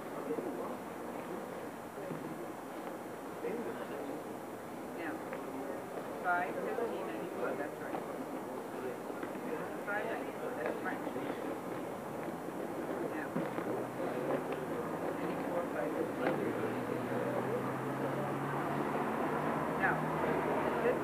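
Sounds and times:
chatter of voices: 0:00.0 - 0:21.0.

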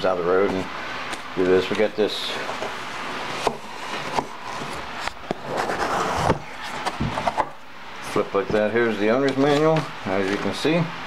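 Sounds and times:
cardboard lid scraping and rustling: 0:02.4 - 0:07.6.

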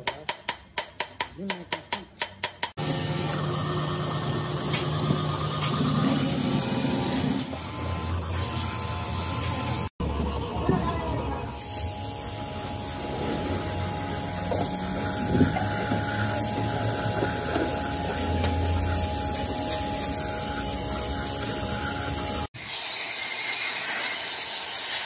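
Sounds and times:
pressure washer spraying metal: 0:11.5 - 0:25.0.

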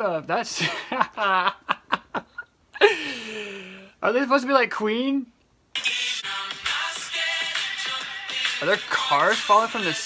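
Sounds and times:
young man laughing: 0:00.5 - 0:03.6.

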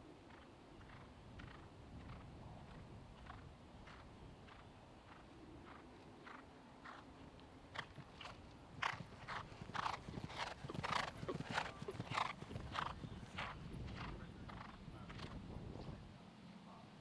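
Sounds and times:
horse hoofbeats on turf: 0:07.7 - 0:15.3.

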